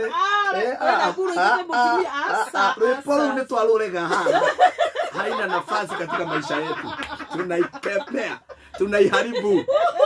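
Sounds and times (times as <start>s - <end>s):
man and women laughing: 4.1s - 10.0s.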